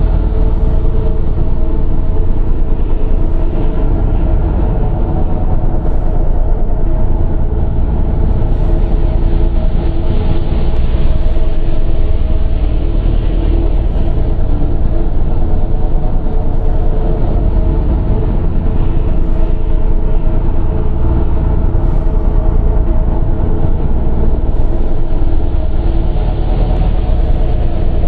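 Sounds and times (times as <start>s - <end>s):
dark industrial drone music: 0.0s - 28.0s.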